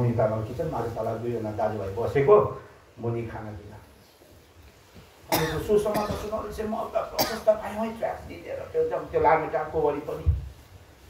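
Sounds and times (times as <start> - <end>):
man speaking: 0.0 - 4.0, 5.3 - 10.4.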